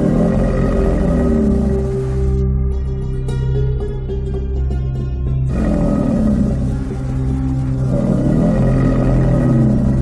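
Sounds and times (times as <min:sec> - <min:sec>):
deep growling dinosaur roar: 0:00.0 - 0:02.4, 0:05.5 - 0:10.0
ambient music drone: 0:00.0 - 0:10.0.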